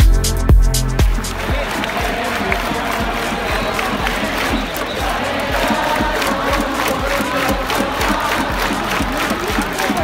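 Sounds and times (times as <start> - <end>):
cheering band music: 0.0 - 10.0
crowd chanting and cheering: 0.8 - 10.0.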